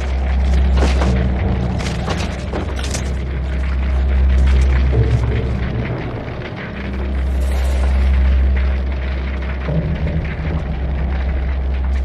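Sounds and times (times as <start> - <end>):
fire rumbling: 0.0 - 12.0.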